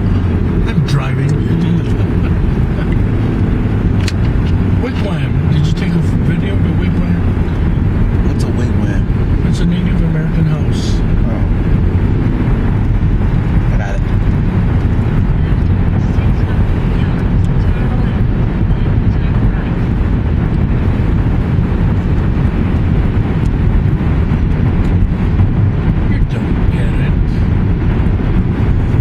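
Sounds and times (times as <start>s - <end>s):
road and tyre noise in car cabin: 0.0s - 29.0s.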